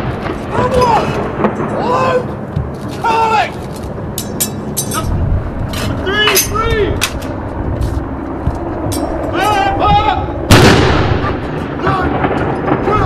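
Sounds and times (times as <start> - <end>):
gun firing boom: 0.0 - 2.7, 9.9 - 13.0.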